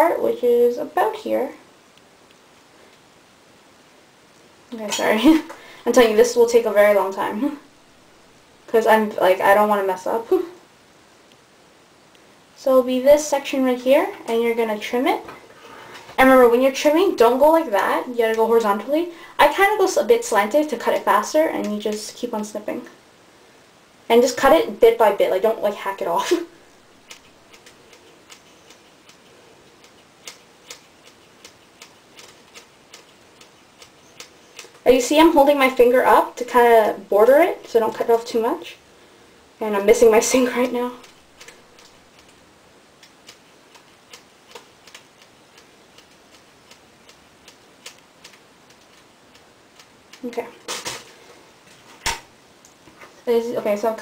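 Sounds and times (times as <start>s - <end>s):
scissors snipping hair: 27.1s - 34.8s, 43.0s - 50.8s.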